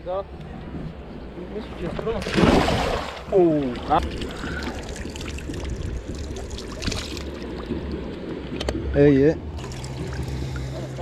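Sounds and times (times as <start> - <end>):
legs wading through water: 2.0 - 8.4.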